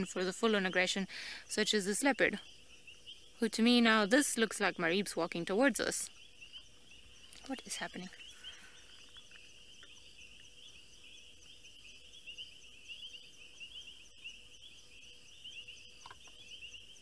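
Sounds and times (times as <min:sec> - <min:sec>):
faint steady hum: 0:00.0 - 0:17.0
insects chirping: 0:00.0 - 0:17.0.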